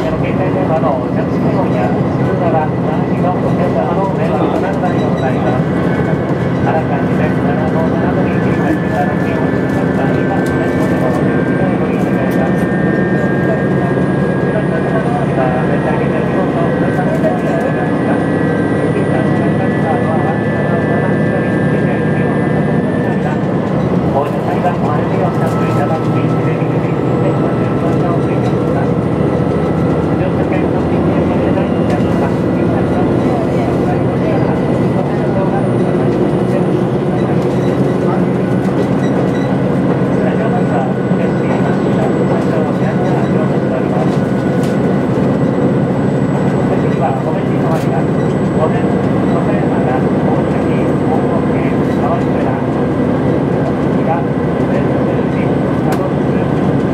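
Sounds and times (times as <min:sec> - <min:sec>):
train engine and wheels drone: 0:00.0 - 0:56.9.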